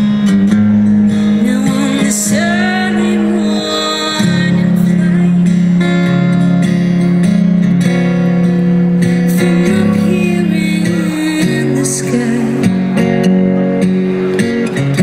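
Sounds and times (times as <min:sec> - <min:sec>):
acoustic guitar strumming: 0:00.0 - 0:15.0
woman singing: 0:01.4 - 0:05.7, 0:09.4 - 0:12.7.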